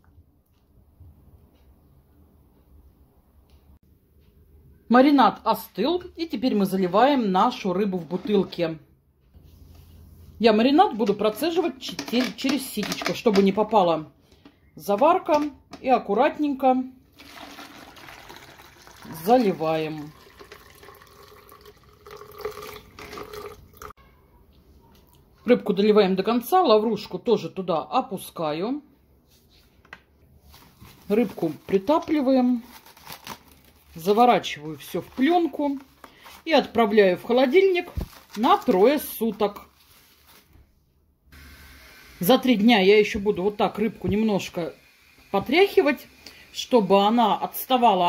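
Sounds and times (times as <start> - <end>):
liquid pouring into bottle: 17.1 - 23.9.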